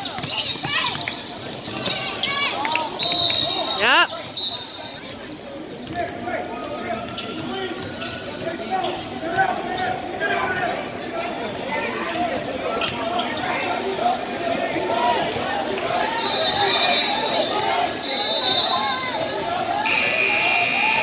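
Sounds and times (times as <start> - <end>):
referee's whistle: 3.0 - 4.9, 16.2 - 19.0, 19.8 - 21.0.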